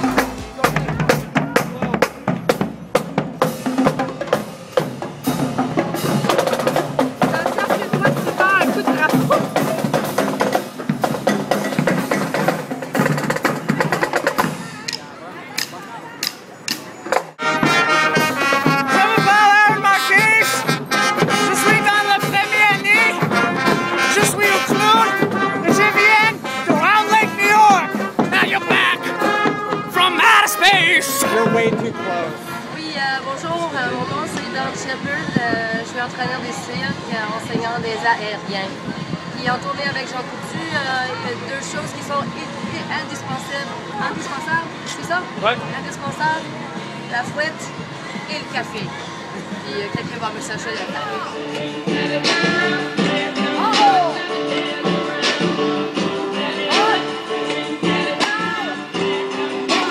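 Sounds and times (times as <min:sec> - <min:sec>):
brass section playing: 0:00.0 - 0:01.7, 0:17.4 - 0:33.1
snare and bass drums cadence: 0:00.0 - 0:15.0.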